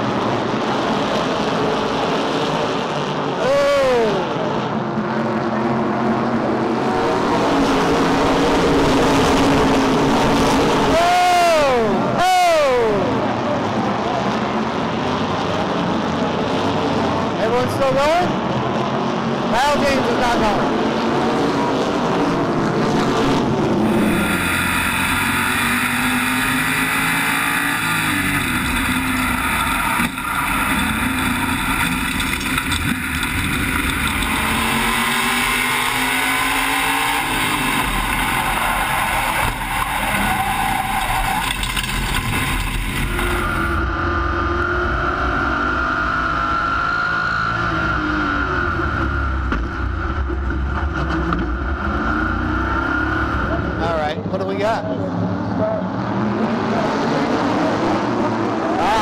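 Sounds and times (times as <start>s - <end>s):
other race cars: 0.0s - 59.0s
wind: 0.0s - 59.0s
race car engine accelerating: 18.3s - 59.0s.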